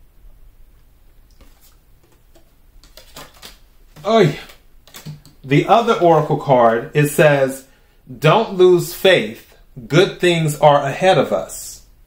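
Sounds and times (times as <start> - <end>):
cards clicking on a table: 1.4 - 5.5.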